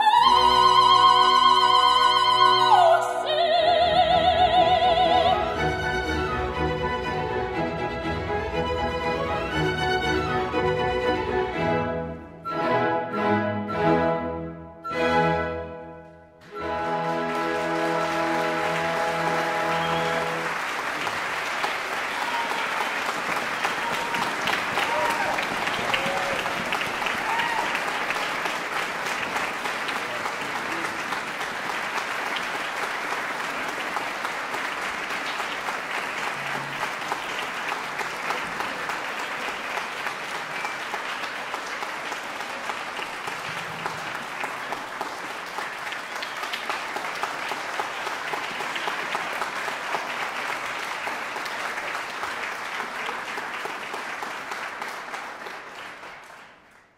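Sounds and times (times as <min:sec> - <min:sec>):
audience applauding: 0:16.4 - 0:56.9.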